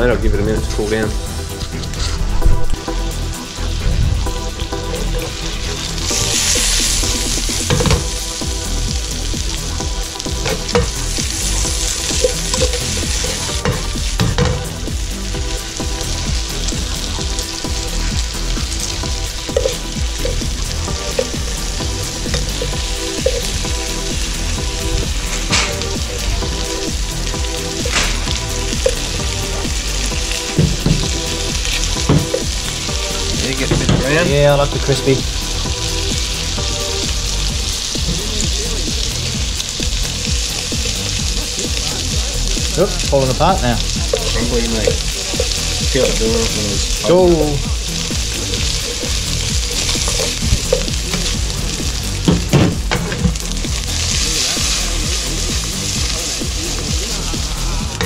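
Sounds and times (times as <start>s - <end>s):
fish sizzling in hot oil: 0.3s - 58.0s.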